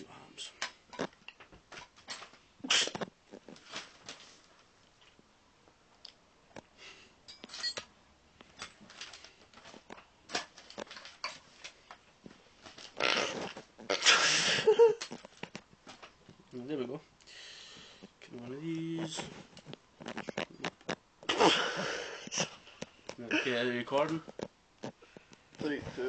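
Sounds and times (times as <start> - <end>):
rustling: 0.8 - 5.3, 7.5 - 17.1, 17.7 - 26.0.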